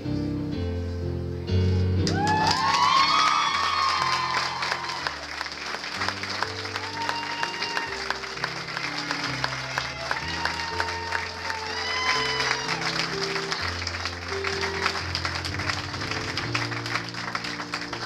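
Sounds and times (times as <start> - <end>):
music: 0.0 - 18.0
audience cheering and whooping: 2.0 - 17.9
audience applauding: 2.0 - 18.0.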